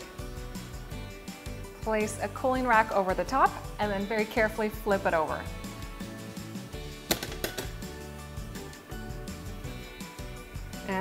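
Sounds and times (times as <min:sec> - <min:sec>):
background music with a beat: 0:00.0 - 0:11.0.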